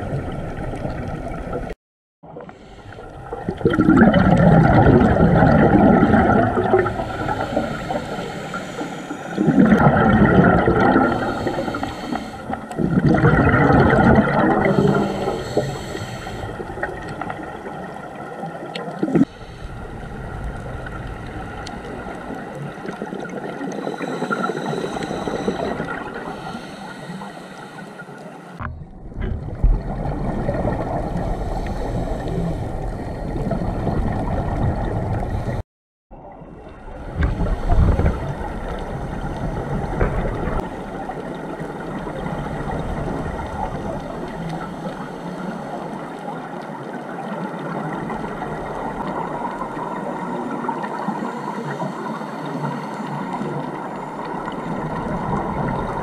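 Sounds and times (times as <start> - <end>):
water noise: 0.0 - 56.0
diver's bubbles gurgling underwater: 3.0 - 26.4, 28.6 - 35.6, 36.9 - 44.8, 53.3 - 56.0.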